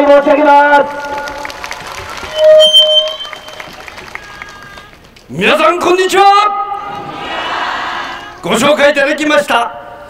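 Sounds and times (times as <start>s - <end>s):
microphone feedback squeal: 2.3s - 3.8s.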